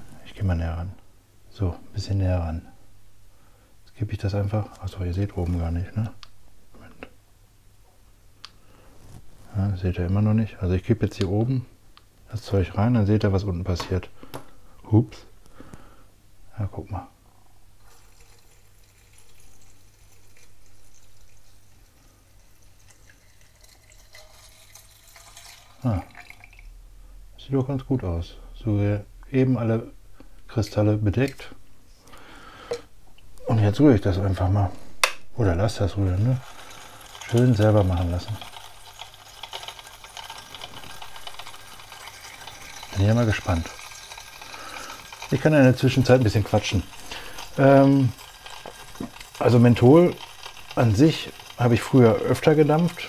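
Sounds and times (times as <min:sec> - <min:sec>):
liquid trickling into glass flask: 0:17.8 - 0:26.8, 0:36.0 - 0:53.0
crystals clicking against glass: 0:36.4 - 0:51.9.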